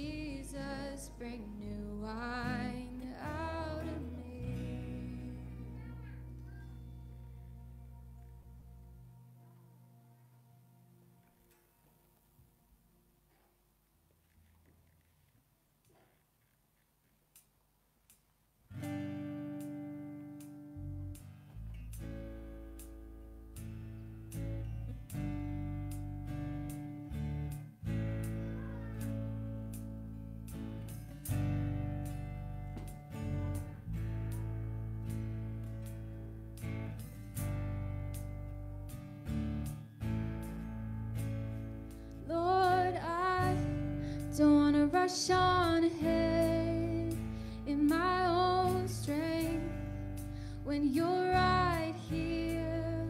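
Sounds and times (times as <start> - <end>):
woman singing: 0.0 - 6.3, 42.2 - 53.0
strummed acoustic guitar chords: 0.0 - 9.2, 18.7 - 53.0
electric bass: 0.0 - 9.7, 20.7 - 53.0.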